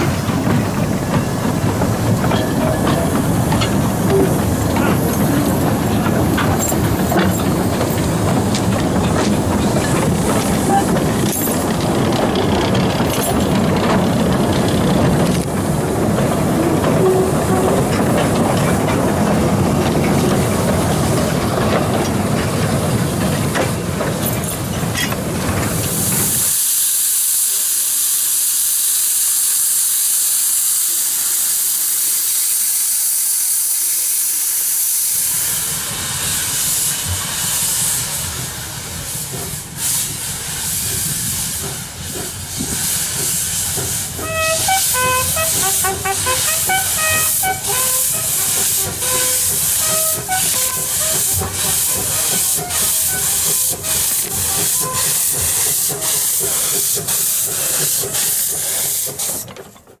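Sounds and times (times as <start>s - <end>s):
steam locomotive exhaust beats: 0.0s - 60.0s
steam hissing from drain cocks: 25.7s - 59.6s.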